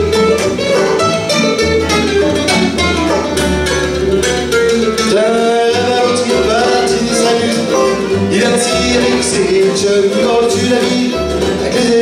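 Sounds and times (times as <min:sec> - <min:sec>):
fiddle: 0:00.0 - 0:11.7
acoustic bluegrass band playing: 0:00.0 - 0:12.0
banjo: 0:00.0 - 0:12.0.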